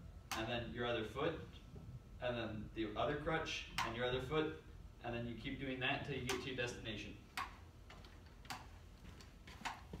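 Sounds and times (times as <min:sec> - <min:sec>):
crutches and feet tapping floor: 0:07.4 - 0:10.0.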